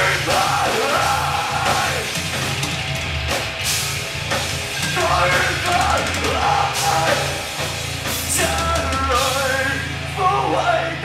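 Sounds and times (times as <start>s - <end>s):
person singing: 0.0s - 2.2s, 4.9s - 7.6s, 8.2s - 11.0s
bass guitar: 0.0s - 11.0s
distorted electric guitar: 0.0s - 11.0s
drum kit: 0.0s - 11.0s.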